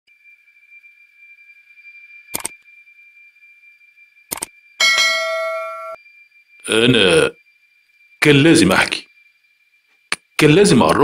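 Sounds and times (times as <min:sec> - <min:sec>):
faint steady high tone: 0:00.1 - 0:11.0
short clicks: 0:04.3 - 0:04.5
bell ding: 0:04.8 - 0:06.0.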